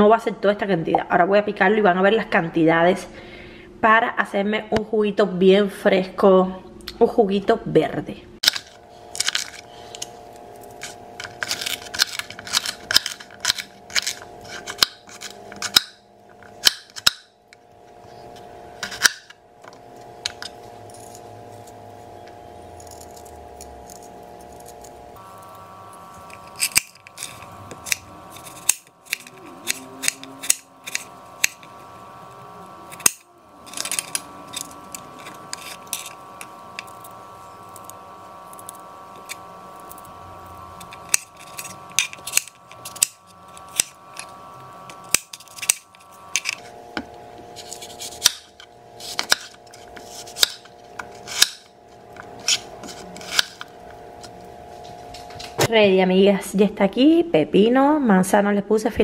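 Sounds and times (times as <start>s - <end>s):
steady hum: 0.0s - 59.0s.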